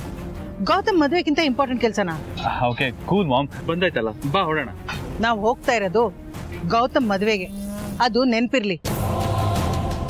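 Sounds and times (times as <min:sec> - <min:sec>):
woman speaking: 0:00.6 - 0:02.2, 0:05.2 - 0:08.9.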